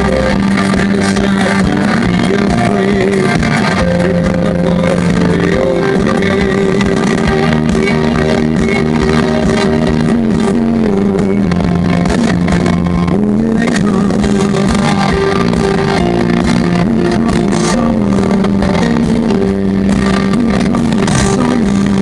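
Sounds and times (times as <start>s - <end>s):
rock band playing loud: 0.0s - 22.0s.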